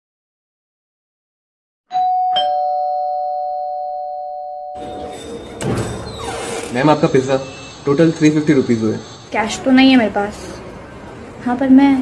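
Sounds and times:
two-note doorbell chime: 0:01.9 - 0:05.2.

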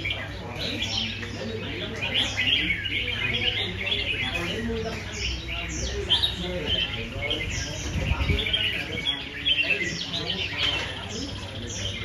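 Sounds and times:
birds chirping and whistling: 0:00.0 - 0:12.0
people talking: 0:00.0 - 0:12.0.

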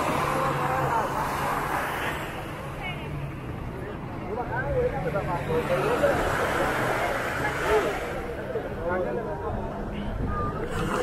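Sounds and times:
people talking: 0:00.0 - 0:11.0
small waves washing: 0:10.6 - 0:11.0.

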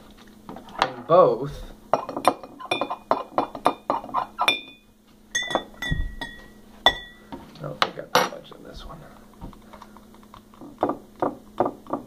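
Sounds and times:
spoon clinking against glass: 0:02.0 - 0:03.8, 0:04.4 - 0:07.2.

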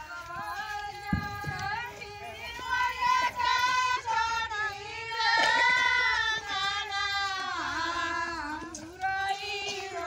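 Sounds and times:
high female voices singing: 0:00.0 - 0:10.0.

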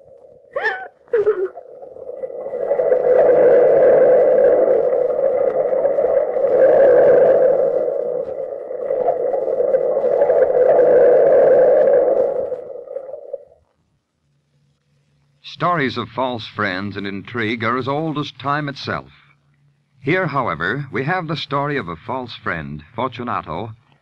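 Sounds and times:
sea surging: 0:01.5 - 0:13.6.

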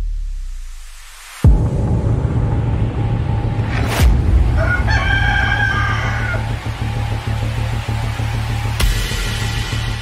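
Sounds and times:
background music: 0:00.0 - 0:10.0
rooster crowing: 0:04.5 - 0:06.8.

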